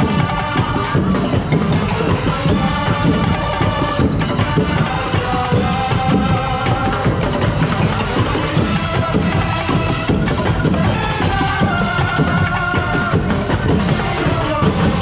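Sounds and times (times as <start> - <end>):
driving drum rhythm: 0.0 - 15.0.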